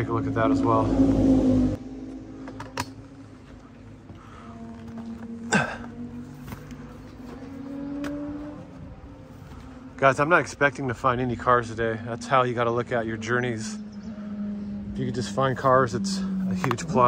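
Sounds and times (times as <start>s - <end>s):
buzzing drone: 0.0s - 10.0s, 11.1s - 17.0s.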